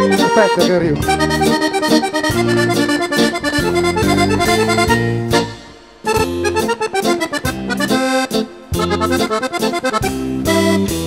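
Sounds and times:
accordion playing lively tune: 0.0s - 11.0s.

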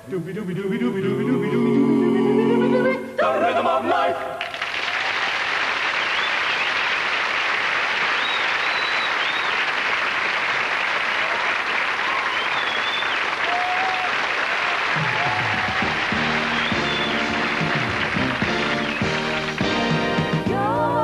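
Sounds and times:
audience applauding: 4.4s - 20.5s.

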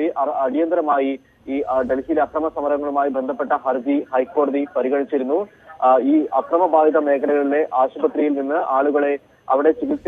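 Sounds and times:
reporter narrating: 0.0s - 10.0s.

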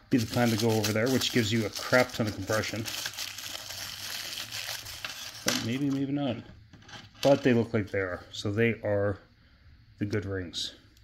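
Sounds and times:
plastic wrapping crinkling: 0.1s - 6.2s.

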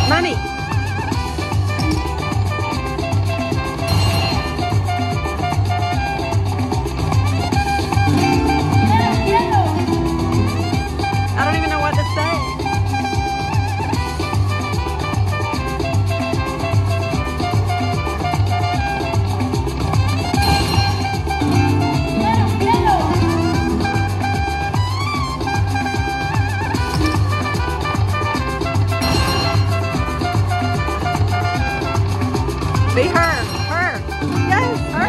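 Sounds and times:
slot machine reels spinning: 0.0s - 6.2s, 19.9s - 25.8s, 28.3s - 35.0s
slot machine bonus music: 0.0s - 12.4s, 19.3s - 35.0s.

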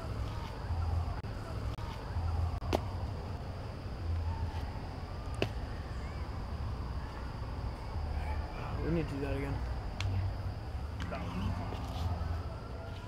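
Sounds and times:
steady high-pitched hum: 0.0s - 13.0s.

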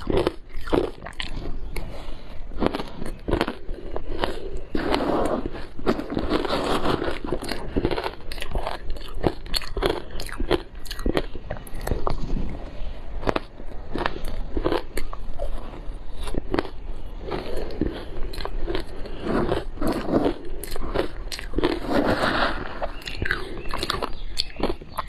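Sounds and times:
crushed ice being chewed: 0.0s - 25.0s.

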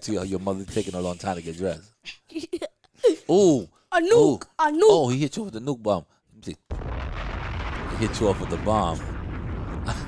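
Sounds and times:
explosion with deep rumble: 6.7s - 10.0s.

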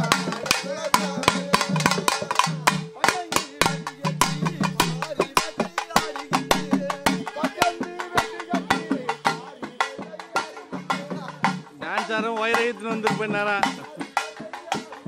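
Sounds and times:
barrel drums beaten with sticks: 0.0s - 15.0s.

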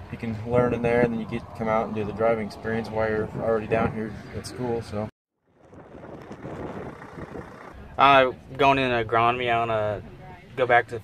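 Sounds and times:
wind on microphone: 0.0s - 7.8s
truck diesel engine rumbling: 0.0s - 10.6s.

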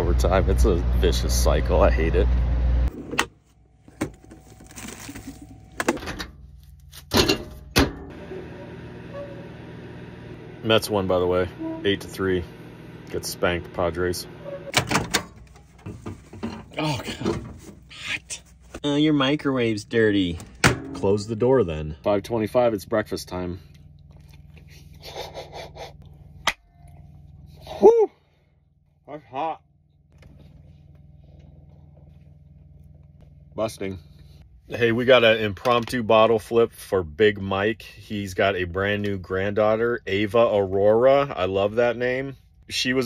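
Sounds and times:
food packaging rustling: 4.1s - 5.6s
man chewing crunchy food: 23.7s - 25.1s
man exclaiming woo: 27.6s - 28.2s.

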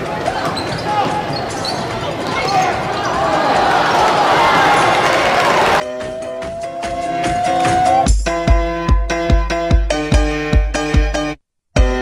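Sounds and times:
arena crowd noise: 0.0s - 5.8s
sneakers squeaking on court: 0.2s - 3.3s
electronic music: 5.8s - 12.0s.

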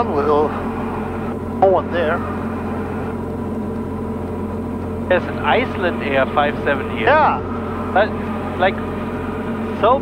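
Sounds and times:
airplane engine and propeller drone: 0.0s - 10.0s.

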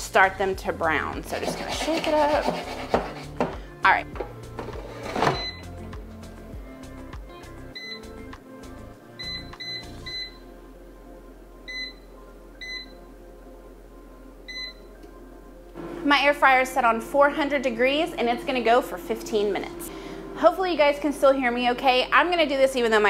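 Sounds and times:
background music: 0.0s - 23.0s
control panel short beeps: 7.8s - 8.1s
fan low steady hum: 10.4s - 23.0s.

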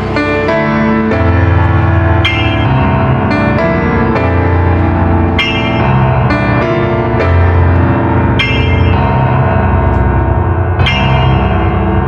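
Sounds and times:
held low bass note: 0.0s - 12.0s
slow piano chords: 0.0s - 12.0s.

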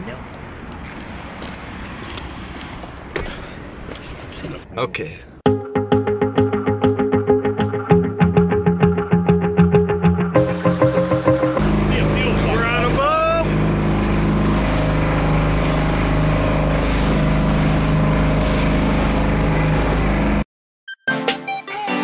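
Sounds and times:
music with plucked beat: 5.5s - 11.6s
motorboat engine drone: 5.5s - 20.4s.

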